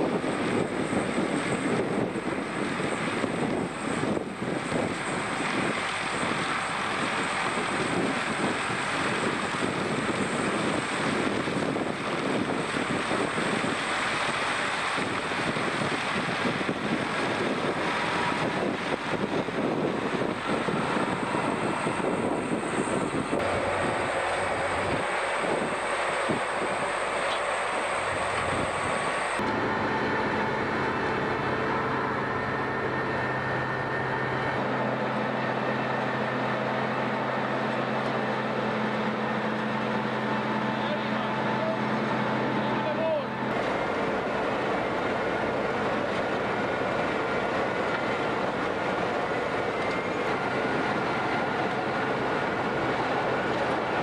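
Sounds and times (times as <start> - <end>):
diesel engine drone: 0.0 - 54.0.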